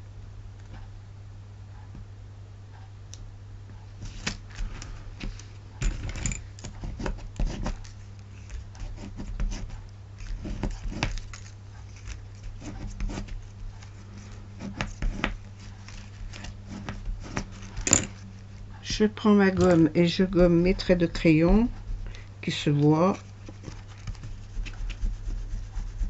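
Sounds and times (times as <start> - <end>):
low electrical hum: 0.0 - 26.0
card stock rustling and tapping: 4.0 - 18.7, 19.4 - 22.2, 22.8 - 25.7.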